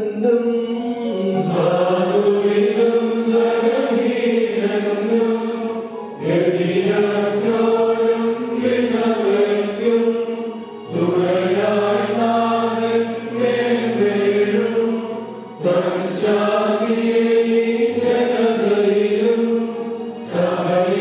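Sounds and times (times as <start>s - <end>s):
voices chanting in long notes: 0.0s - 21.0s.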